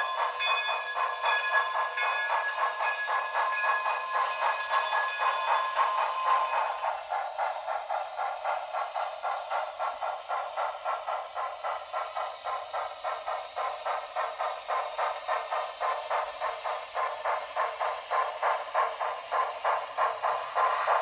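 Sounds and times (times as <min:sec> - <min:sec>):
thin steam exhaust chuffing: 0:00.0 - 0:21.0.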